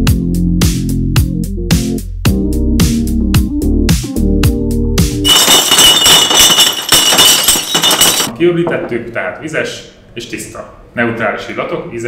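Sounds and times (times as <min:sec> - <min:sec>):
glass bottles clinking: 0:05.3 - 0:08.3.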